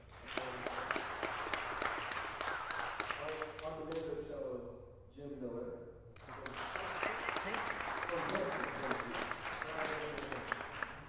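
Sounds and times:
audience applauding: 0.0 - 3.8, 6.2 - 11.0.

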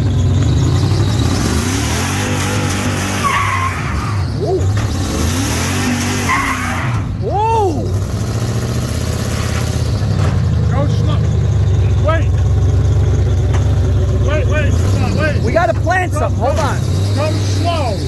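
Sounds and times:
tires squealing on pavement: 0.0 - 11.2, 14.2 - 18.0
pickup engine revving: 0.0 - 18.0.

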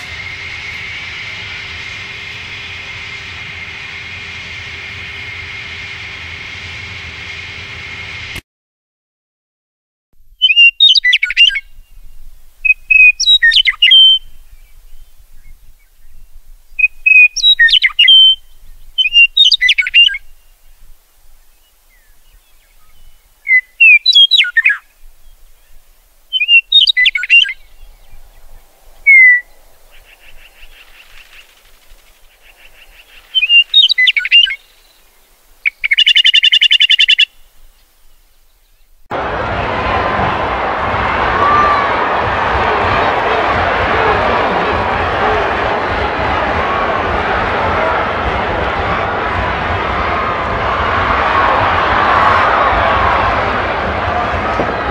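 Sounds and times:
songbird chirping: 21.4 - 39.1.

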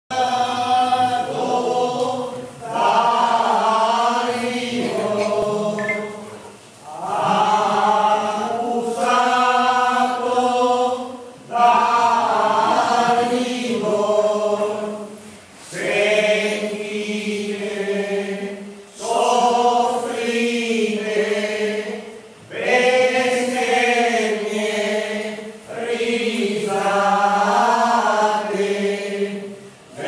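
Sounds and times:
group chanting sacred song: 0.1 - 30.0.

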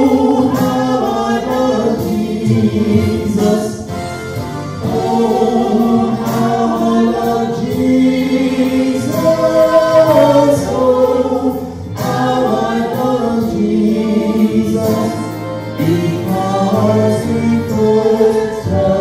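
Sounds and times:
man and woman singing: 0.0 - 3.9, 4.8 - 19.0.

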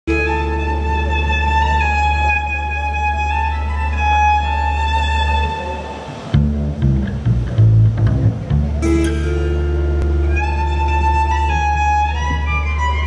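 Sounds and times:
fiddle playing: 0.1 - 6.4, 8.5 - 13.0
guitar notes: 0.1 - 13.0
low drone: 0.1 - 13.0
plucked double bass: 0.1 - 13.0.

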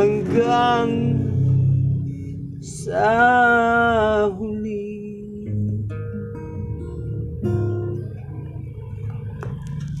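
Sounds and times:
guitar ringing: 0.0 - 10.0.

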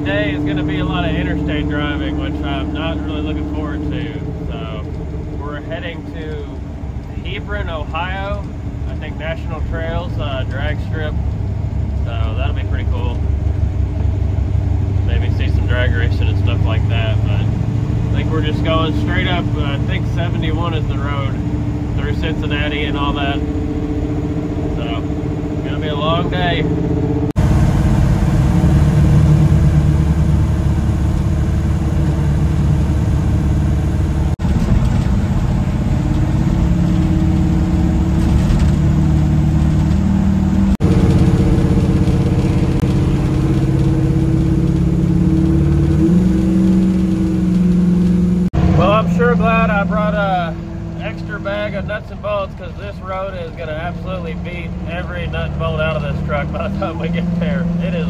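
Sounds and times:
person talking: 0.0 - 4.8, 12.1 - 13.2, 18.2 - 21.4, 22.0 - 23.4, 24.8 - 26.7, 48.8 - 58.0
pickup engine and road noise: 0.0 - 58.0.

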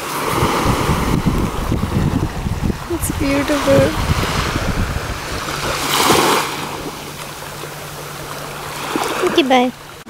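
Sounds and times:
small waves lapping on sand: 0.0 - 10.0
wind rumble on microphone: 0.0 - 10.0.

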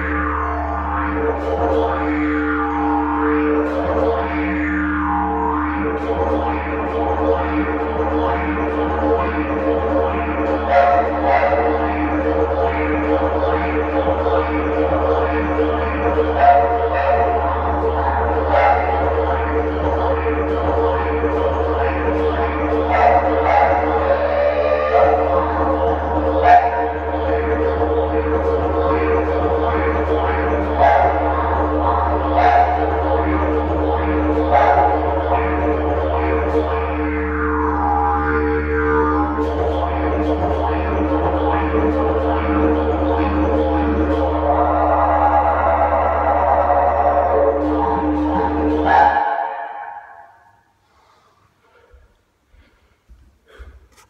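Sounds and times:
didgeridoo drone: 0.0 - 52.1
vocal call through didgeridoo: 0.0 - 52.1.

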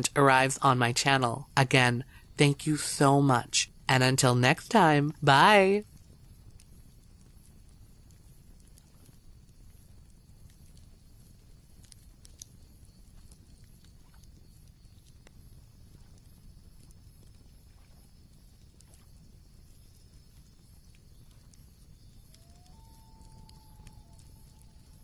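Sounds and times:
campfire crackling: 0.0 - 25.0.

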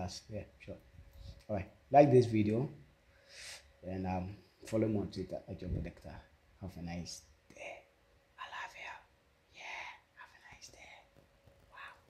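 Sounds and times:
man whispering: 7.5 - 11.1.

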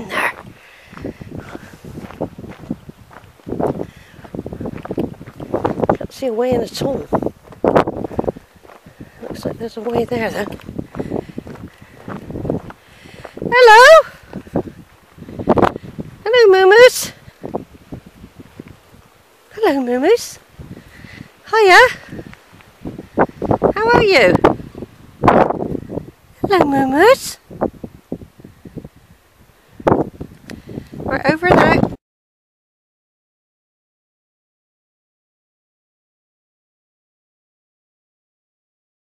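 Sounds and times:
footsteps on grassy track: 0.0 - 28.2
wind buffeting microphone: 0.0 - 32.0.

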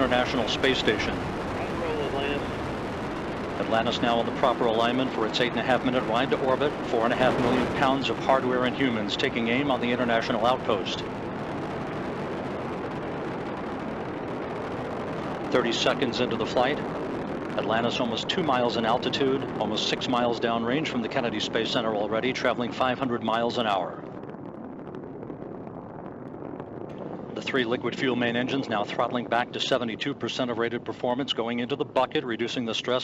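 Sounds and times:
rocket engines roaring: 0.0 - 33.0.

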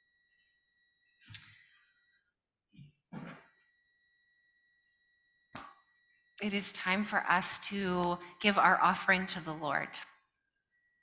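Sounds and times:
faint high electronic tone: 0.0 - 2.3.

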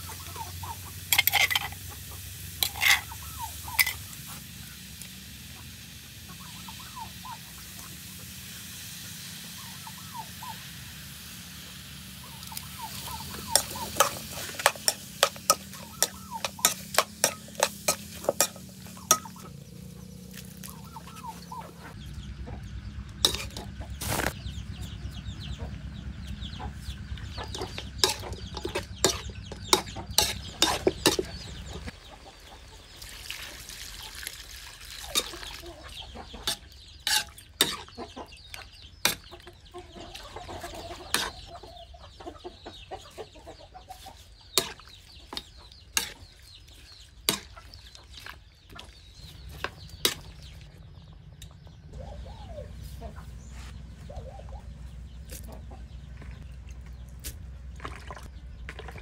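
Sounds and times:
hens clucking: 0.0 - 4.8, 5.5 - 8.0, 12.2 - 33.0, 35.0 - 57.2
metal spoon scraping a wok: 1.1 - 1.8, 2.6 - 3.2, 3.8 - 4.1, 12.9 - 19.4, 23.2 - 24.4, 27.5 - 31.3, 36.4 - 37.8.

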